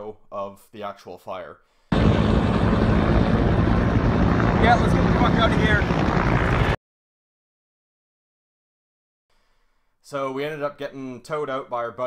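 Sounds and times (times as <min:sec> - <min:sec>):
helicopter flying overhead: 0:01.9 - 0:06.8.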